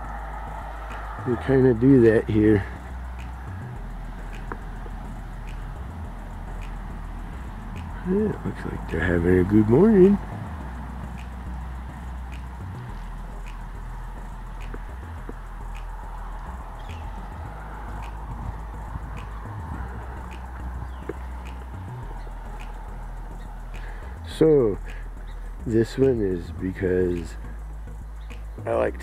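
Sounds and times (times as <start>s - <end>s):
light ticks: 0.0s - 1.4s, 2.6s - 26.5s, 27.1s - 28.7s
low rumble: 0.0s - 25.8s.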